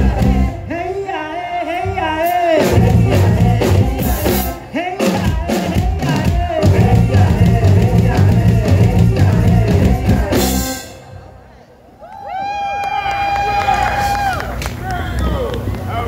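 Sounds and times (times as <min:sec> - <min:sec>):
drum kit: 0:00.0 - 0:00.5, 0:02.2 - 0:11.1
electric bass: 0:00.0 - 0:00.9, 0:01.9 - 0:11.3
person singing: 0:00.0 - 0:11.0.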